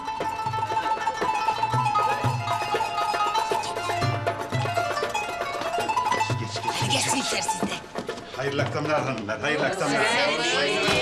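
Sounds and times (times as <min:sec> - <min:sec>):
plucked string notes: 0:00.0 - 0:09.0.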